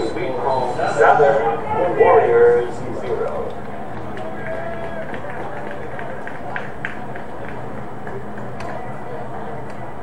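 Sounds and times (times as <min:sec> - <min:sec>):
faint distant voices: 0:00.0 - 0:10.0.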